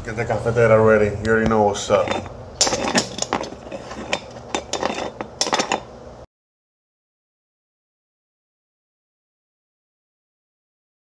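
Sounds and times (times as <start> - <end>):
metal scraping on threads: 1.7 - 6.0
metal pot threads clicking: 2.0 - 5.9.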